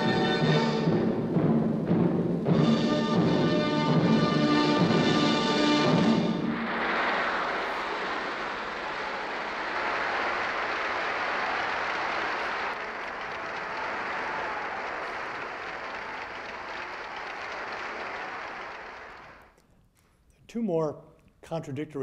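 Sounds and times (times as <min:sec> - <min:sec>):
large audience applauding: 0:04.6 - 0:19.6.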